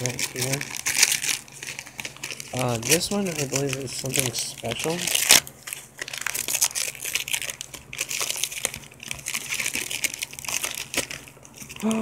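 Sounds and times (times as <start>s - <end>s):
wrapping paper crumpling: 0.0s - 12.0s.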